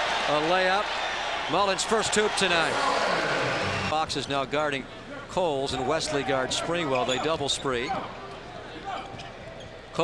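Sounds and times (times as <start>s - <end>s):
basketball court noise: 2.2s - 4.2s.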